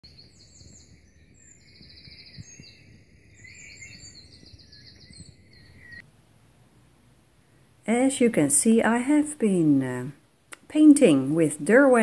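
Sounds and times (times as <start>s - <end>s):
songbirds trilling and chirping: 0.0s - 6.0s
low background noise: 5.1s - 12.0s.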